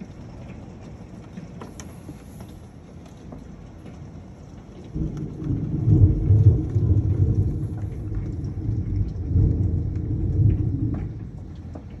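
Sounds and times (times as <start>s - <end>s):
hail and rain on a roof: 0.0s - 12.0s
sharp ticks of hailstones: 2.8s - 12.0s
heavy low rumble: 5.0s - 12.0s.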